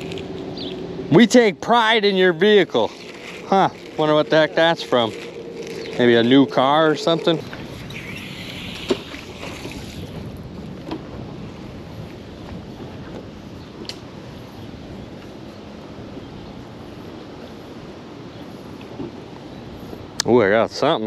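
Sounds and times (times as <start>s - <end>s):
faint water wash: 0.0s - 13.5s
wind on microphone: 0.0s - 20.2s.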